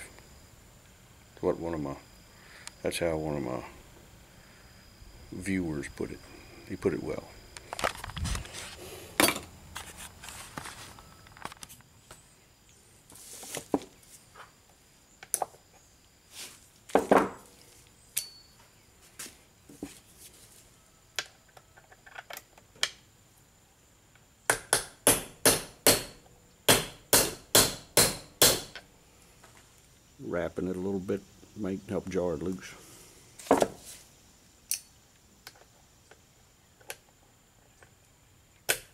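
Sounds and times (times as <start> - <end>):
hammer tapping on metal: 24.5 - 28.7.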